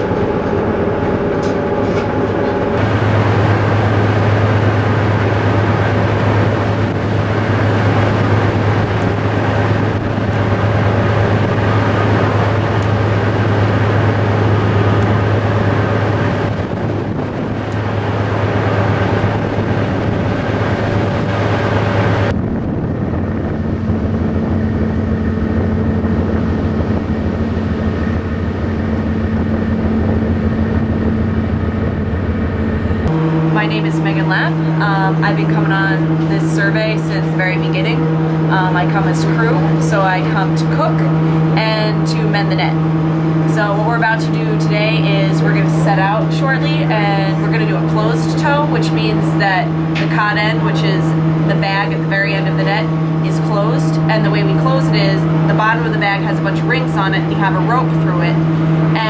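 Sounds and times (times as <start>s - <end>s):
boat engine droning: 0.0s - 59.0s
higher steady hum: 0.0s - 59.0s
water noise: 0.0s - 59.0s
wind: 0.0s - 59.0s.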